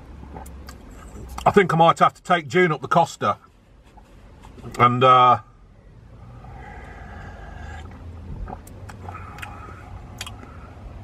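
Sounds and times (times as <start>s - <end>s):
low rumble in van cabin: 0.0s - 11.0s
sipping and swallowing: 0.2s - 1.4s, 7.3s - 10.6s
mouth clicks: 7.6s - 10.6s.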